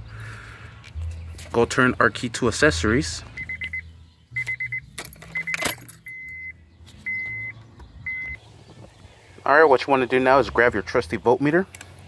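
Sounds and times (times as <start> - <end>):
dashboard warning chime beeps: 3.4 - 8.4
car keys jangling: 4.9 - 6.5.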